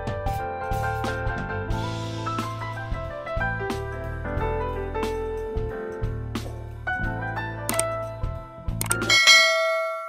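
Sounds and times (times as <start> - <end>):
background music with bass line: 0.0 - 9.5
quick clicks: 7.7 - 8.0, 8.8 - 9.1
bright bell ding: 9.0 - 10.0.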